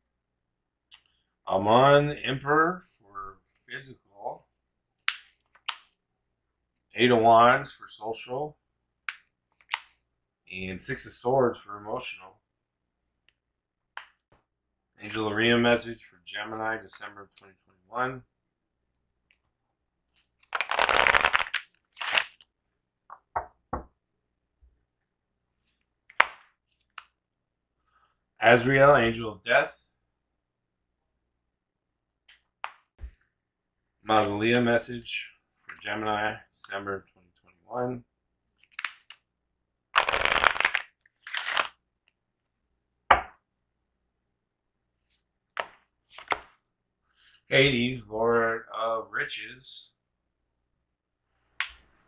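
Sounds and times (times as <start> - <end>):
cards snapping: 5.1 - 5.9, 9.1 - 10.0, 20.4 - 22.5, 26.1 - 27.2, 38.6 - 39.2, 40.0 - 41.8, 45.6 - 46.6
cards being shuffled: 5.1 - 6.0, 9.1 - 10.0, 20.1 - 22.5, 38.6 - 39.2, 40.0 - 41.8, 45.5 - 46.6
card slaps: 26.1 - 27.1, 45.6 - 46.6.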